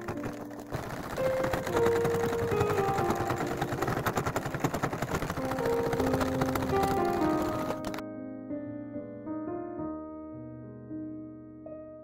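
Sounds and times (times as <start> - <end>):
sewing machine stitching: 0.0 - 8.0
light piano music: 0.0 - 12.0.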